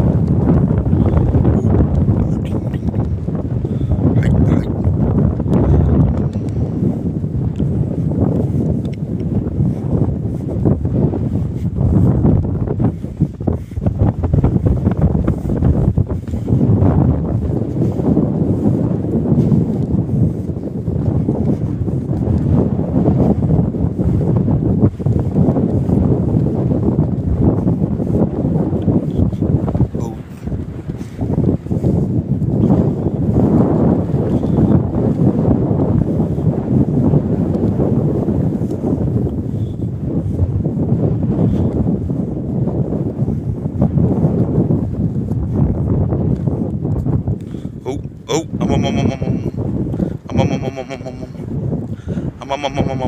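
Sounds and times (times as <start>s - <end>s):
wind buffeting microphone: 0.0s - 53.0s.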